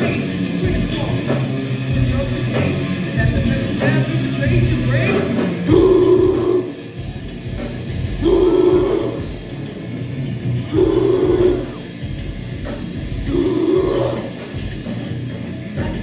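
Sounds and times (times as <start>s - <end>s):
heavy metal band playing: 0.0s - 16.0s.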